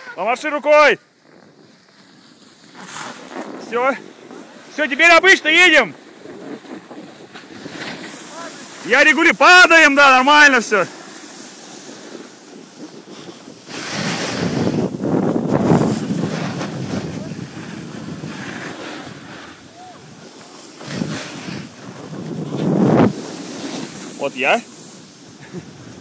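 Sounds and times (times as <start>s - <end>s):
snow scraping under rider: 0.0s - 26.0s
wind buffeting microphone: 11.6s - 24.5s.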